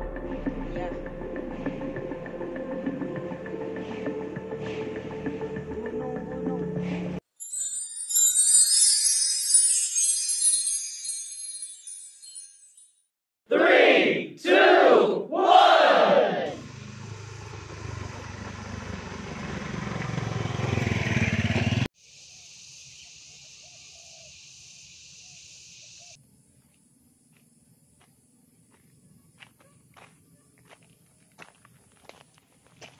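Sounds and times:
rising swelling noise: 0:00.0 - 0:06.0
loud shouted calls: 0:13.5 - 0:16.6.

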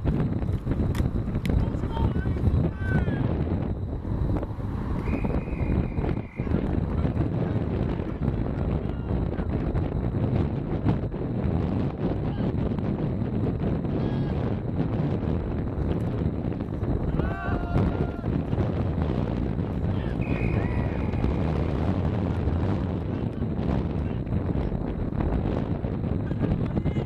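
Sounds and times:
wind buffeting microphone: 0:00.0 - 0:27.0
referee's whistle blast: 0:05.0 - 0:06.6, 0:20.1 - 0:21.1.

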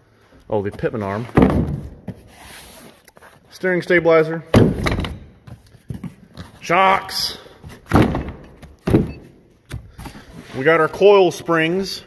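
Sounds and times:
cardboard boxes thudding down: 0:01.3 - 0:02.3, 0:07.7 - 0:09.2.

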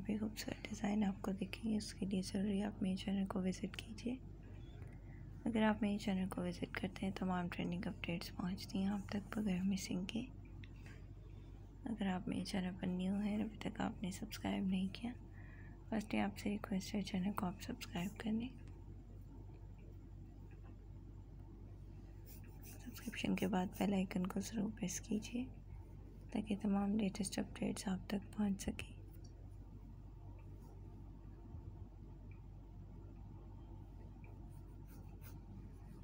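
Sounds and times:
woman speaking: 0:00.0 - 0:04.3, 0:05.4 - 0:10.4, 0:11.8 - 0:15.2, 0:15.9 - 0:18.6, 0:22.6 - 0:25.6, 0:26.3 - 0:29.1
steady low hum: 0:00.0 - 0:36.0.

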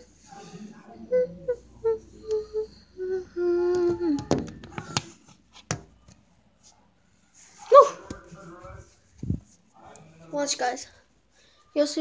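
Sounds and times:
person humming: 0:01.0 - 0:04.6.

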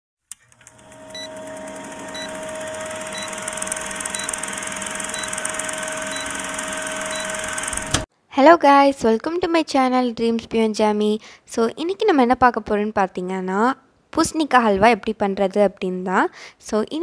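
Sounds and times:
film projector whirring and clattering: 0:00.3 - 0:08.1.

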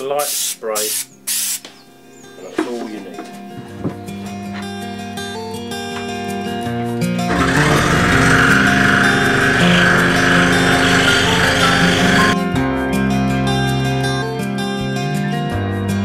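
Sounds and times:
scroll saw buzzing: 0:07.3 - 0:12.4.

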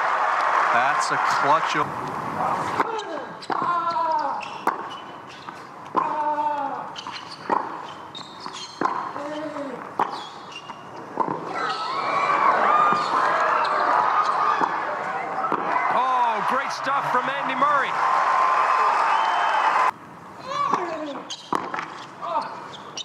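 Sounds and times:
crowd cheering and shouting: 0:00.0 - 0:02.9, 0:11.4 - 0:20.0
racket striking tennis ball: 0:07.0 - 0:09.2, 0:20.7 - 0:22.0.

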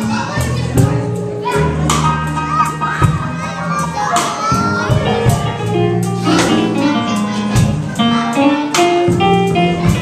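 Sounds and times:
children chattering: 0:00.0 - 0:10.0
drum kit: 0:00.0 - 0:10.0
sustained low bass notes: 0:00.0 - 0:10.0.

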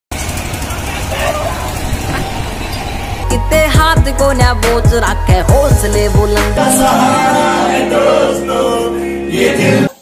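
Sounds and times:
fairground ride machinery rumble: 0:00.1 - 0:09.2
crowd voices: 0:00.2 - 0:03.5.

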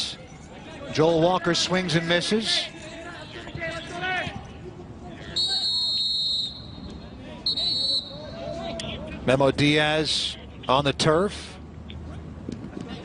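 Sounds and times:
referee's whistle blasts: 0:05.3 - 0:08.2.

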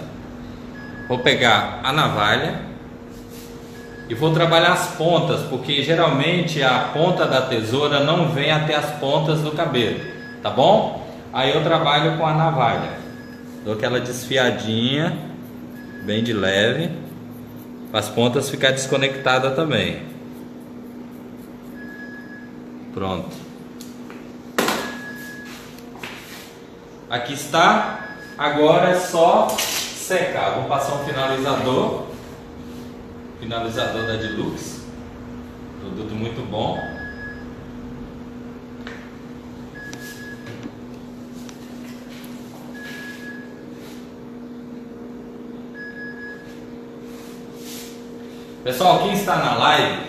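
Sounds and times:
steady low hum: 0:00.0 - 0:50.0
short high beep: 0:21.7 - 0:22.6.

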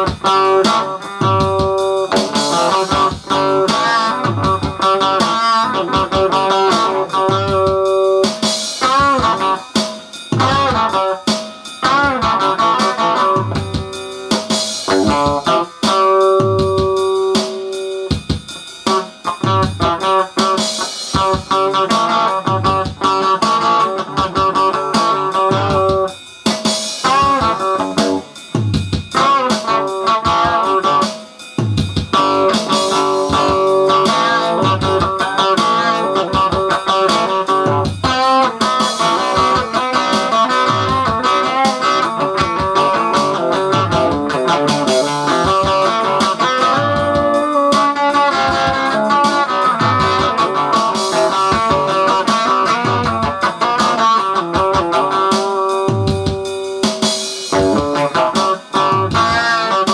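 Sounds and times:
electric guitar playing rock: 0:00.0 - 0:59.9
low beat: 0:00.0 - 0:59.9.

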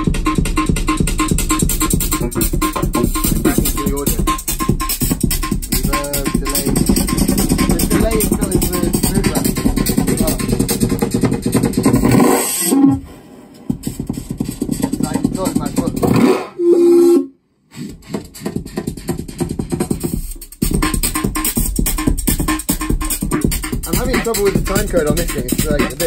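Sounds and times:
electronic synthesizer music: 0:00.0 - 0:16.6, 0:20.7 - 0:26.0.

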